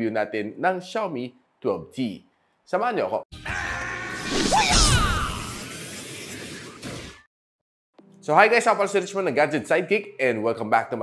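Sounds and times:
music: 0:03.3 - 0:04.3, 0:08.0 - 0:11.0
whoosh into a hit: 0:04.2 - 0:07.2.

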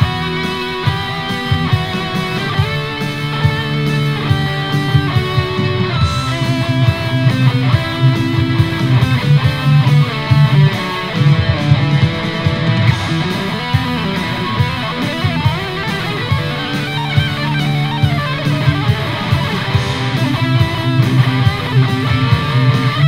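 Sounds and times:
electric guitar lead: 0:00.0 - 0:23.0
heavy metal backing track: 0:00.0 - 0:23.0.

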